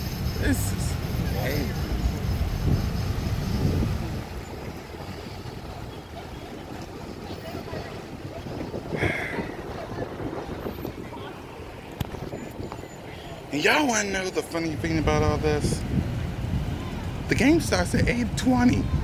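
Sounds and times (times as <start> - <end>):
wind on microphone: 0.0 - 13.5, 14.7 - 19.0
cars driving slowly past: 0.0 - 19.0.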